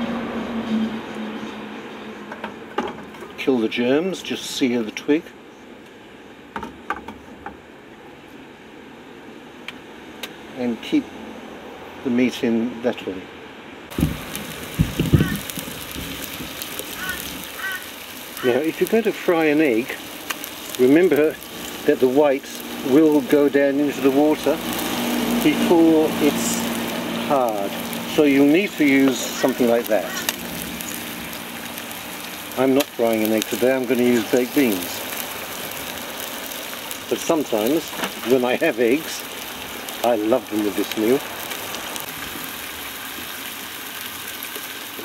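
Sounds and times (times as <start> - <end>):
low thumps: 13.9 - 16.6
food sizzling in frying pan: 13.9 - 45.0.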